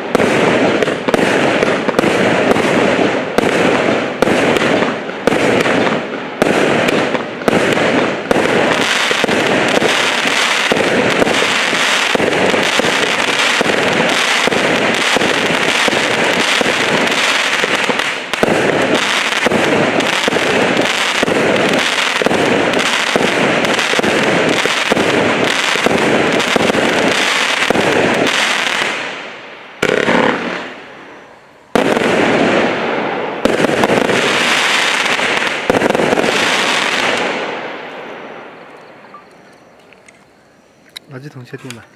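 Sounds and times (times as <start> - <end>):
fireworks launching and bursting: 0.0 - 41.9.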